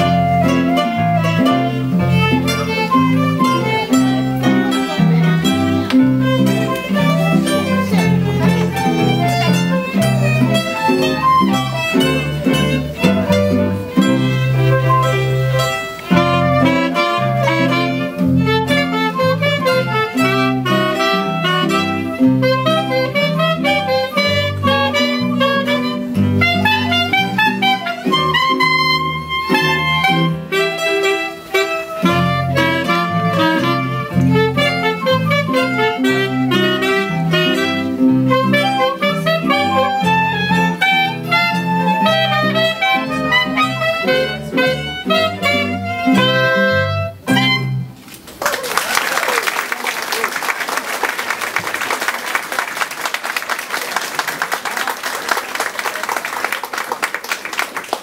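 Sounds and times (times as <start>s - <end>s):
small ensemble playing lively piece: 0.0s - 58.0s
audience applause: 48.1s - 58.0s.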